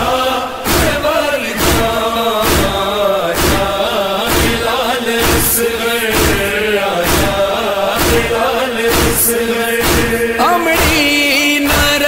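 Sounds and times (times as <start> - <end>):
heavy steady thump: 0.0 - 12.0
man chanting a lament: 0.0 - 12.0.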